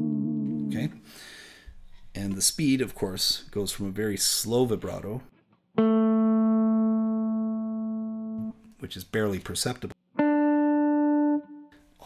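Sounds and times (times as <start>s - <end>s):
electric guitar chord with vibrato: 5.8s - 8.5s.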